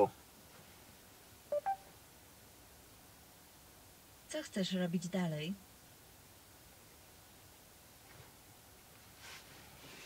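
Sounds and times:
short electronic beeps: 1.5s - 1.8s.

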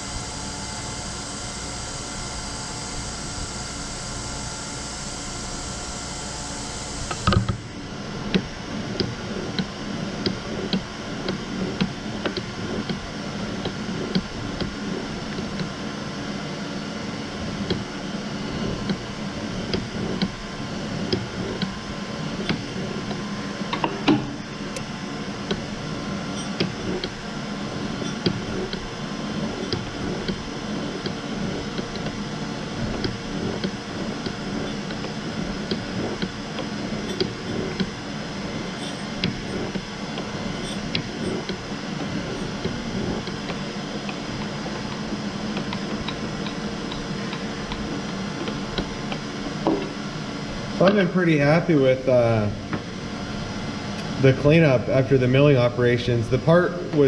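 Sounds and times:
surface grinder humming: 10.2s - 55.5s.

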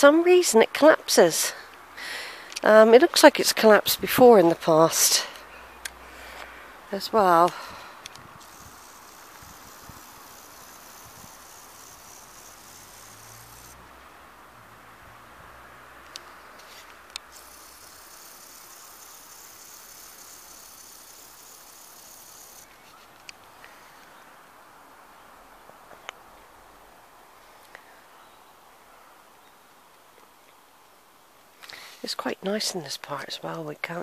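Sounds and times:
distant traffic hum: 0.0s - 34.0s
steady hiss: 4.7s - 15.0s, 16.2s - 28.2s
small sharp clicks: 16.0s - 23.8s.

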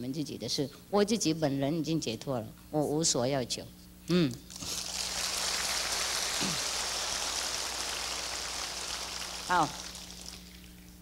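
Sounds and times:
large audience applauding: 4.7s - 10.8s.

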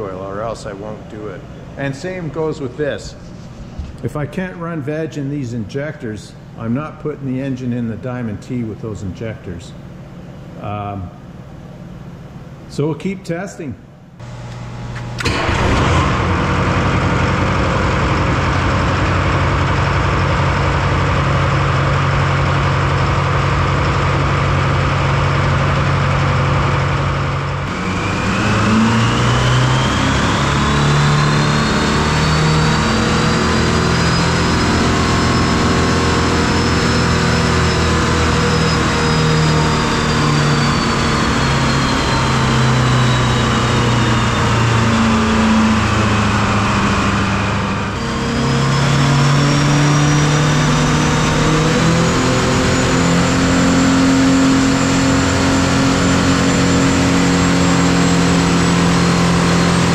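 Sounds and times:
diesel engine running: 0.0s - 5.0s, 14.2s - 59.9s
high turbo whine: 0.0s - 12.9s, 14.1s - 59.9s.

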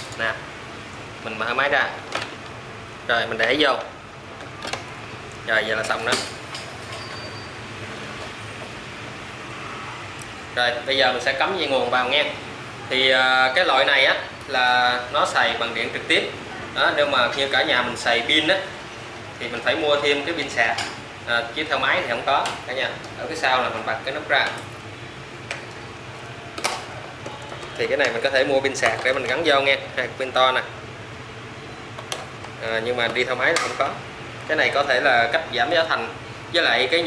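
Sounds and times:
low rumble and hiss: 0.0s - 37.0s.

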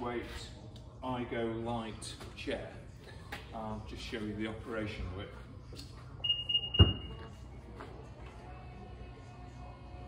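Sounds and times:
electronic warning beep: 6.2s - 7.2s.

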